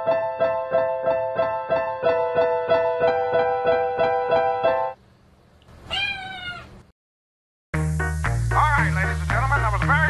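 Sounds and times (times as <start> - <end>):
cat meowing: 5.8 - 6.9.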